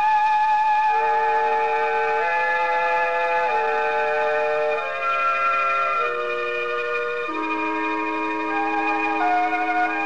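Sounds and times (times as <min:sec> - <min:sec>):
held musical chords: 0:00.0 - 0:10.0.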